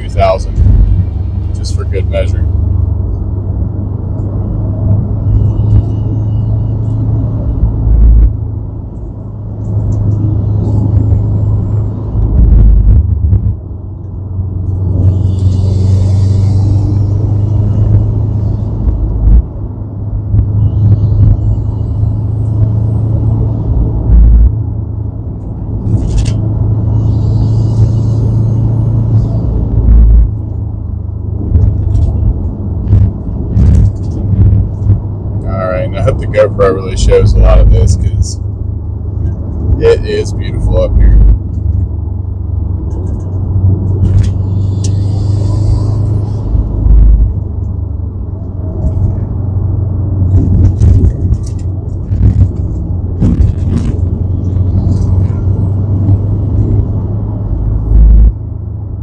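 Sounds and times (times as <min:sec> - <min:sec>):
car engine drone: 0:00.0 - 0:59.0
road and wind rumble: 0:00.0 - 0:59.0.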